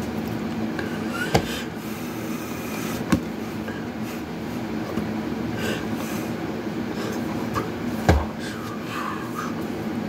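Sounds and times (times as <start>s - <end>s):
constant hum: 0.0s - 10.0s
low mechanical rumble: 0.0s - 10.0s.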